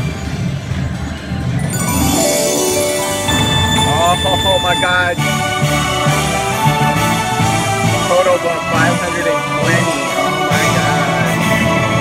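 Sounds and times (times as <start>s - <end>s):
slot machine gliding tone: 1.6s - 7.5s
celebration tune with pulsing bass: 1.6s - 10.8s.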